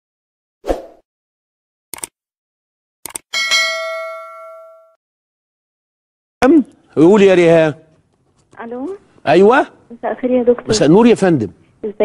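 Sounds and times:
notification bell ding: 0:03.3 - 0:05.0.

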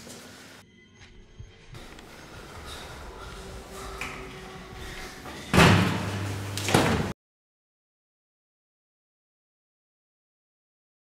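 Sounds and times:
loud slam with rumble: 0:05.5 - 0:06.2.

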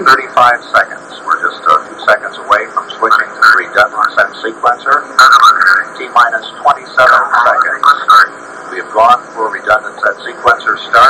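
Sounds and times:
voices talking on tv speaker: 0:00.0 - 0:11.0.

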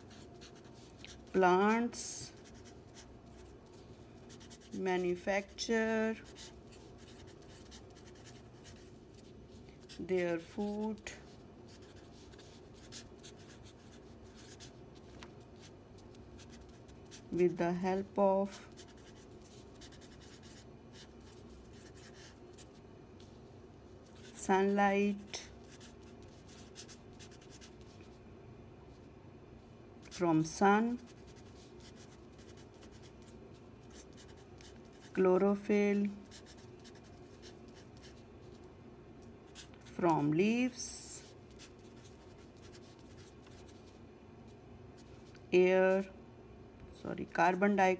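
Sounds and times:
marker scratching on paper: 0:00.0 - 0:15.7, 0:16.4 - 0:17.4, 0:18.5 - 0:22.7, 0:25.1 - 0:28.0, 0:30.1 - 0:35.2, 0:36.2 - 0:38.6, 0:41.2 - 0:43.9
felt-tip pen scratching paper: 0:04.3 - 0:04.8, 0:36.2 - 0:38.2.

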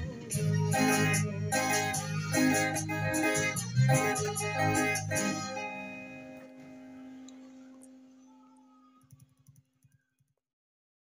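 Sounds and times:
electric guitar chord ringing: 0:00.0 - 0:08.8.

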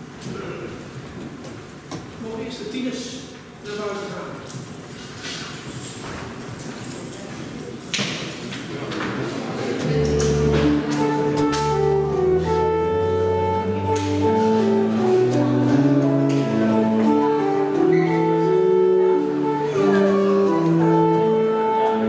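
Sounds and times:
church organ chords: 0:09.8 - 0:22.0
hall noise: 0:09.8 - 0:22.0.

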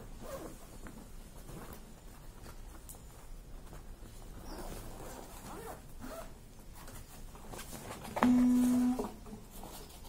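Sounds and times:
faint scraping and rustling: 0:00.0 - 0:10.0
zipper pulled open: 0:00.2 - 0:00.6, 0:04.5 - 0:06.3
loud steady low tone: 0:08.2 - 0:09.1.

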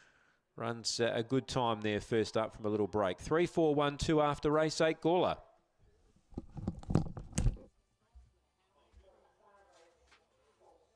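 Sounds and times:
crackling clicks and knocks: 0:06.3 - 0:07.7.

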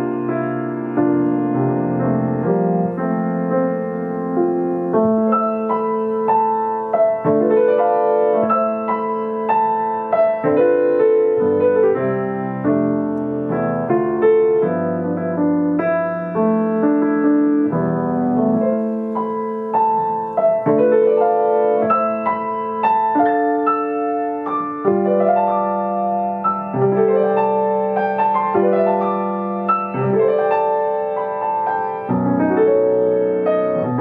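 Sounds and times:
grand piano solo: 0:00.0 - 0:34.0.

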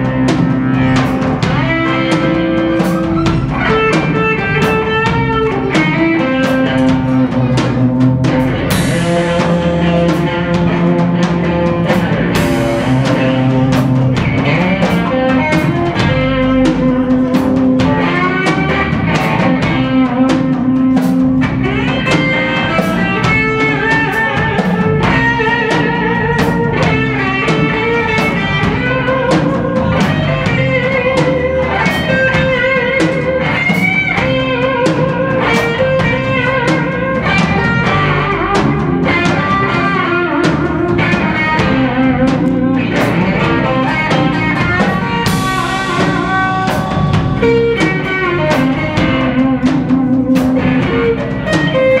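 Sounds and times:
drum kit beat: 0:00.0 - 0:52.0
electric guitar lead lines: 0:00.0 - 0:52.0.

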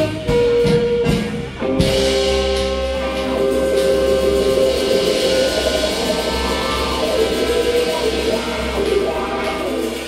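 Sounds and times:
electric guitar: 0:00.0 - 0:10.0
live band playing: 0:00.0 - 0:10.0.

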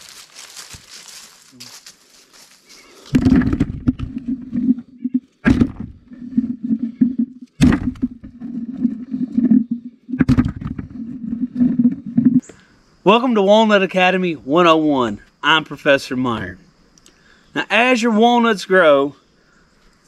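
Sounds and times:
nuts thudding into bucket: 0:03.1 - 0:04.5, 0:05.4 - 0:06.0, 0:07.6 - 0:08.3, 0:10.2 - 0:11.0
low rumble of rolling nuts: 0:03.1 - 0:12.4.

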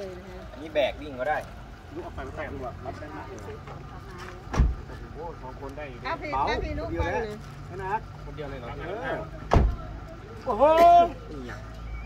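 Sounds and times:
sharp thump: 0:04.5 - 0:04.8, 0:09.5 - 0:09.8.

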